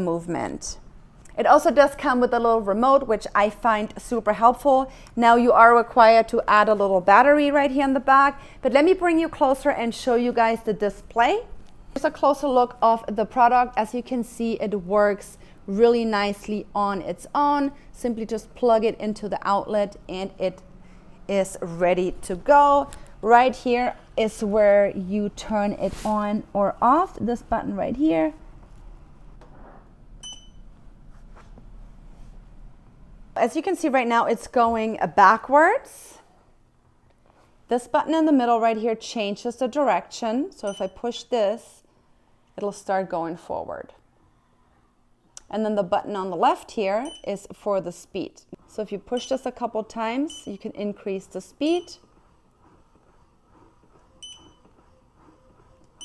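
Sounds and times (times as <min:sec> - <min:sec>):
low steady hum: 0:00.0 - 0:56.0
short electronic beep: 0:30.2 - 0:30.6
motorized pedals running: 0:51.0 - 0:56.0.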